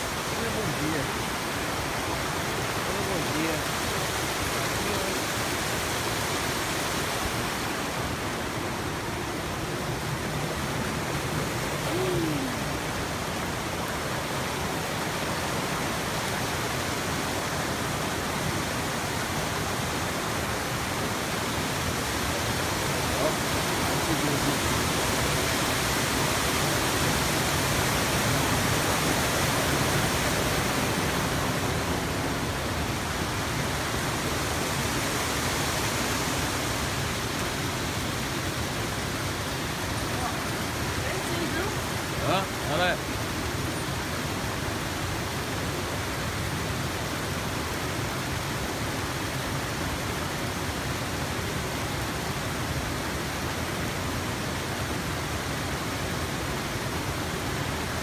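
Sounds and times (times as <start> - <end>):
waterfall rushing over rock: 0.0 - 58.0.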